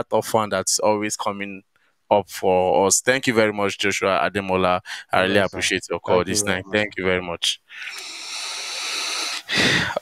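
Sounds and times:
audio line hiss: 4.9 - 10.0.

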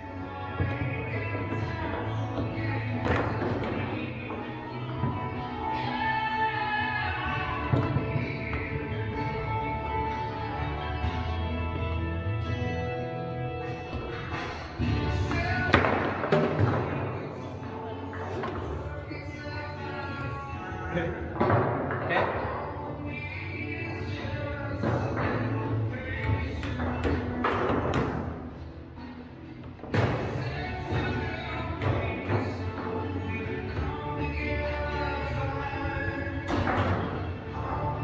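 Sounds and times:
background music: 0.0 - 38.0
foosball rods banging: 13.8 - 18.9, 24.0 - 28.6, 29.6 - 37.8
foosball ball knocks and thumps: 13.9 - 17.4, 21.3 - 22.6, 24.8 - 28.4, 36.3 - 37.3.

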